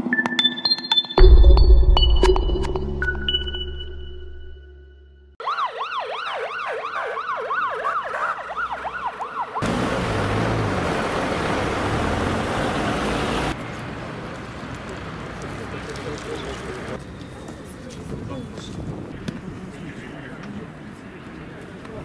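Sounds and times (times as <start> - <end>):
siren wailing in yelp pattern: 5.4 - 9.6
rushing street noise: 5.4 - 22.0.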